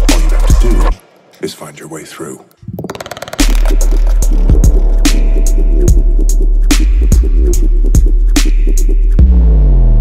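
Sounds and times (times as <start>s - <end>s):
deep sub-bass: 0.0s - 1.0s, 2.6s - 10.0s
dubstep track: 0.0s - 1.0s, 2.7s - 9.8s.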